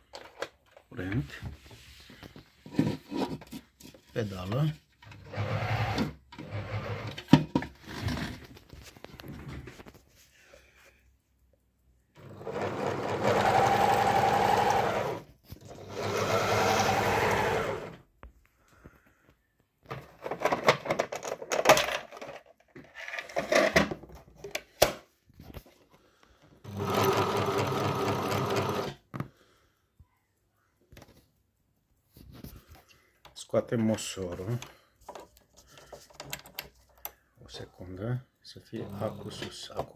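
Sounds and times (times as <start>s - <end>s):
sewing machine running: 5.2s - 7.1s, 12.2s - 18.0s, 26.6s - 29.0s.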